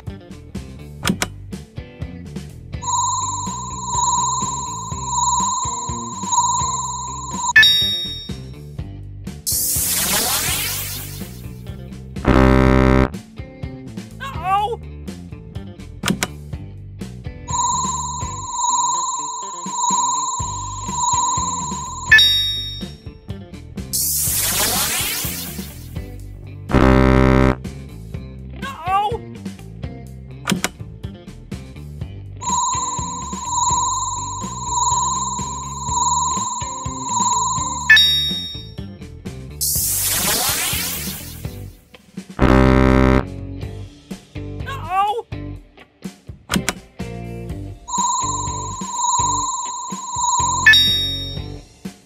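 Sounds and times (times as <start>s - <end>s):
bright ding: 2.8s - 8.4s, 17.5s - 22.9s, 32.4s - 38.8s, 47.9s - 51.5s
high fluttering ringing tone: 2.8s - 8.4s, 17.5s - 22.9s, 32.4s - 38.8s, 47.9s - 51.4s.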